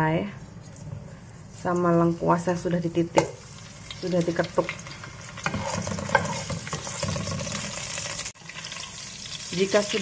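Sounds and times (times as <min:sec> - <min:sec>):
food sizzling in hot oil: 0:01.4 - 0:10.0.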